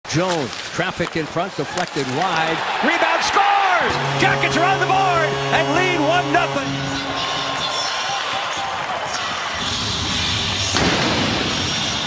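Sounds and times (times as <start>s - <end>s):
arena crowd noise: 1.1s - 12.0s.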